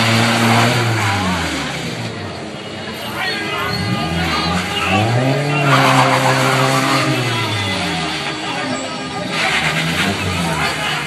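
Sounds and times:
car engine at high revs: 0.0s - 2.6s, 3.7s - 11.0s
tyres skidding and squealing: 0.0s - 11.0s.

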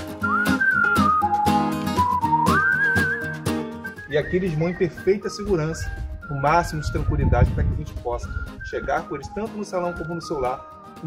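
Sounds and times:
instrumental music with steady beat: 0.0s - 11.0s
whistled melody: 0.0s - 11.0s.

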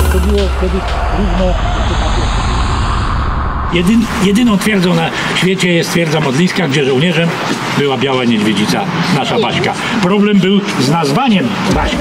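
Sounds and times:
low rumble with hiss: 0.0s - 6.5s.

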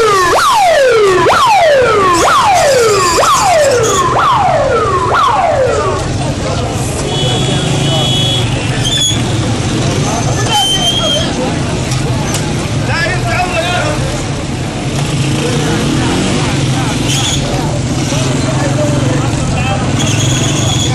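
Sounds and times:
emergency vehicle siren: 0.0s - 6.9s.

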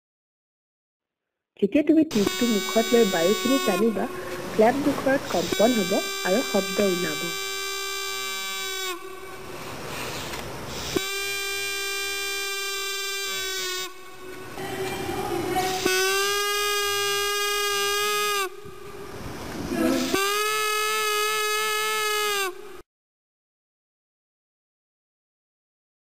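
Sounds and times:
paper flute notes: 2.1s - 19.2s, 19.8s - 22.8s
breath noise: 4.1s - 4.7s, 8.6s - 11.1s.

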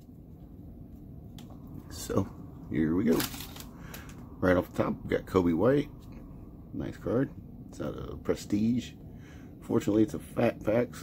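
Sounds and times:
handling trading cards: 3.0s - 4.2s.

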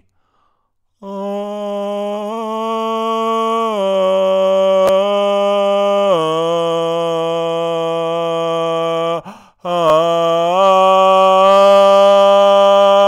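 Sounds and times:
man singing wordless chant: 1.0s - 13.0s.

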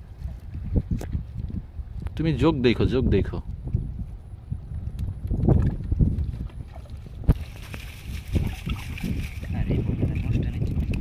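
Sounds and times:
wind rumbling on microphone: 0.0s - 11.0s
water sloshing: 5.6s - 11.0s
water running out of net: 6.8s - 11.0s.

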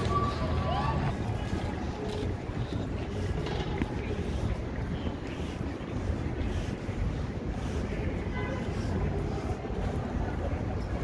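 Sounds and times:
outdoor city background: 0.0s - 11.0s.

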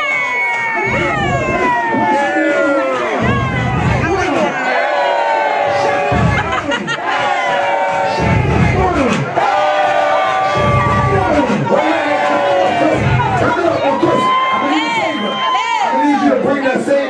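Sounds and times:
crowd cheering and shouting: 0.0s - 17.0s
loud music with heavy bass beat: 0.0s - 17.0s.

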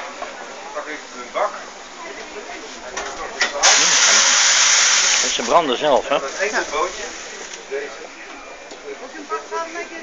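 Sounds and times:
steam wand hissing: 3.6s - 5.6s.

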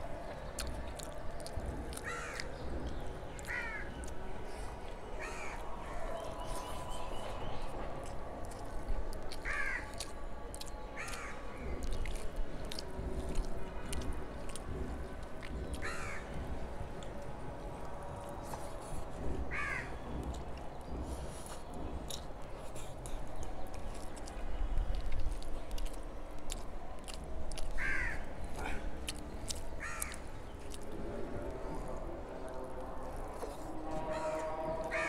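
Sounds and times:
fingers mixing rice with curry: 0.0s - 35.0s.

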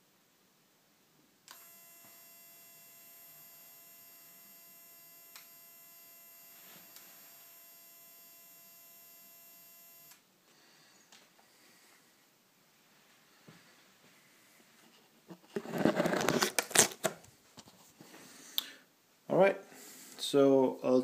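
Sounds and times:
faint high electronic whine: 1.4s - 12.0s.

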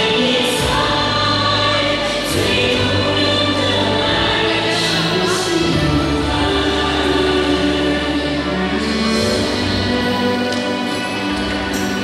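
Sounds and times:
children singing in chorus: 0.0s - 12.0s
musical accompaniment: 0.0s - 12.0s.

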